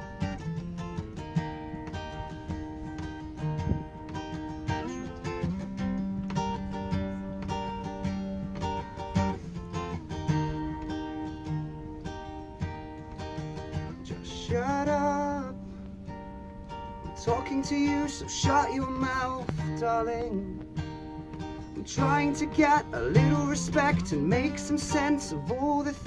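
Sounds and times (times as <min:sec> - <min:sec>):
acoustic guitars playing: 0:00.0 - 0:26.0.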